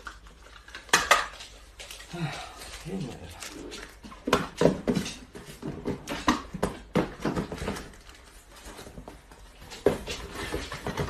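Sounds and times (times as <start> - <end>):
cardboard rustling: 1.5 - 11.0.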